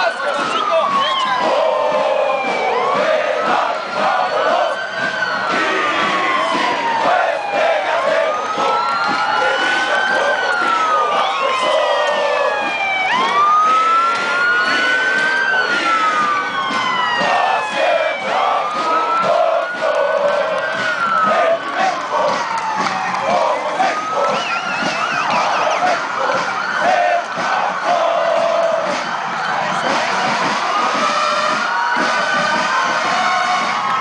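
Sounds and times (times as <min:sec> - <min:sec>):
crowd noise: 0:00.0 - 0:34.0
siren-like wails: 0:00.0 - 0:34.0.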